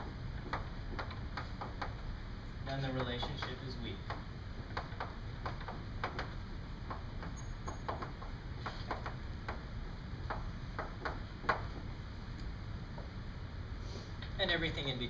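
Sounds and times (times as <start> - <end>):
low room hum: 0.0 - 15.0
chalk tapping and scratching: 2.8 - 9.6.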